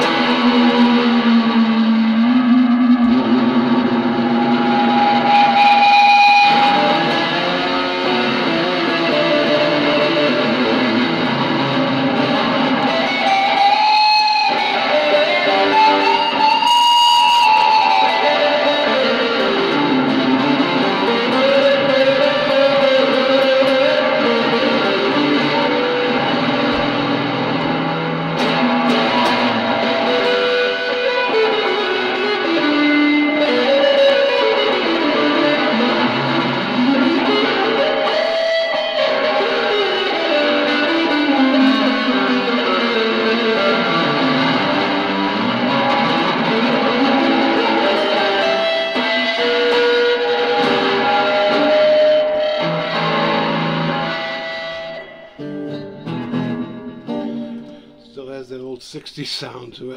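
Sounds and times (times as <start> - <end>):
electric guitar playing: 0.0 - 58.8.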